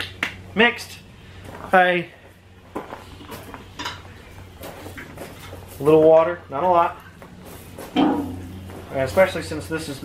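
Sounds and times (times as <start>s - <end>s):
metal watering can clanking: 8.0s - 8.6s.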